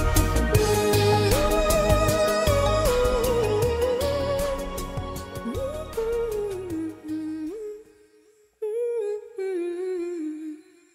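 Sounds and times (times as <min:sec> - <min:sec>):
song held note with accompaniment: 0:00.0 - 0:07.6.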